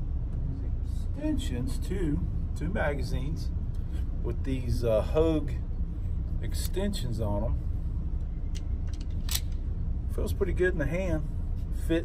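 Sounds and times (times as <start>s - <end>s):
low background rumble: 0.0s - 12.0s
pistol metallic clicks: 8.5s - 9.6s.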